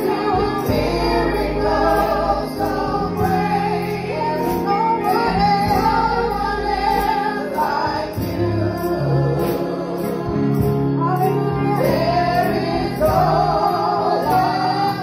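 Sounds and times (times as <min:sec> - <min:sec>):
gospel choir singing: 0:00.0 - 0:15.0.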